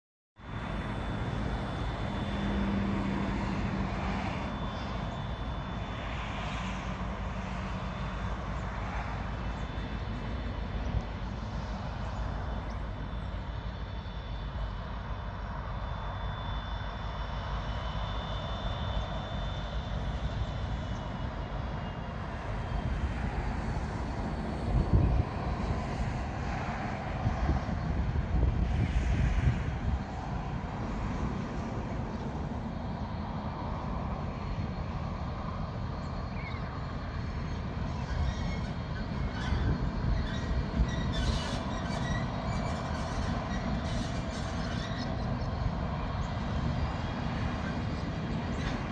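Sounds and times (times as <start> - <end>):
distant freight train rumbling: 0.4 - 48.9.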